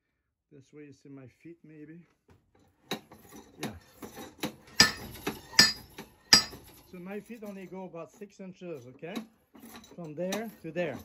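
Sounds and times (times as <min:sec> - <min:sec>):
hammer clanking on steel anvil: 0:02.9 - 0:06.8.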